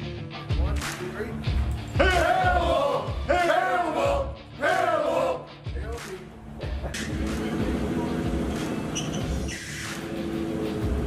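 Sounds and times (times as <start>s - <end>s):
background music: 0.0s - 11.0s
fire engine running: 7.0s - 11.0s.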